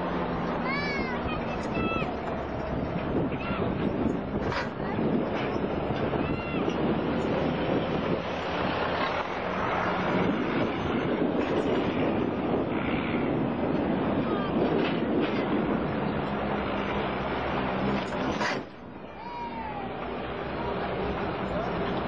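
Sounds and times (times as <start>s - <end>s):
vehicle engine and road noise: 0.0s - 22.0s.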